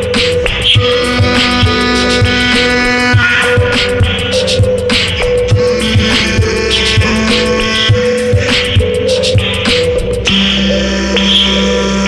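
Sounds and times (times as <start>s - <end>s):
percussive beat: 0.0s - 10.6s
beatbox vocal loops: 0.0s - 12.0s
sustained low bass note: 0.8s - 8.9s.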